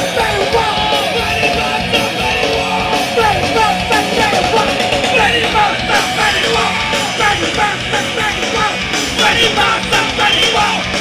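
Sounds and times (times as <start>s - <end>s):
punk rock band playing live: 0.0s - 11.0s.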